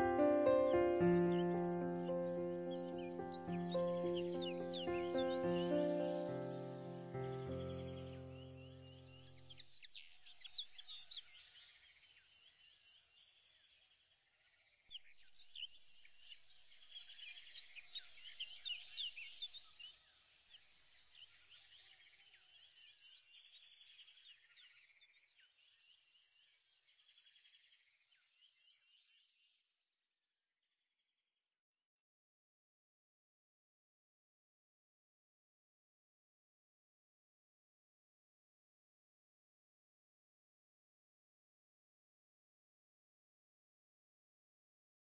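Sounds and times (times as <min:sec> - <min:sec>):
held music chord: 0:00.0 - 0:09.0
high rapid bird chirps: 0:00.1 - 0:09.1.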